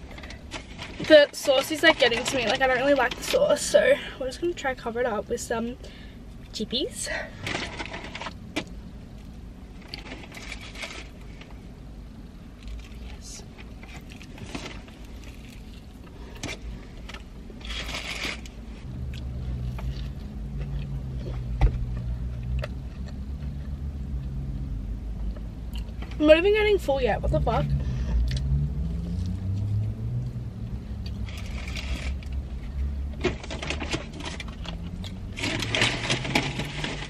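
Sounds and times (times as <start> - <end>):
low vehicle engine rumble: 0.0 - 37.0
person chewing food: 13.8 - 16.4.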